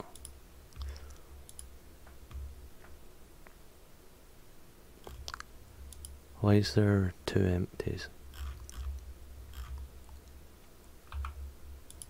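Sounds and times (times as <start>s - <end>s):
computer mouse clicks: 0.0s - 1.7s, 5.0s - 6.2s, 8.4s - 9.0s, 11.1s - 12.0s.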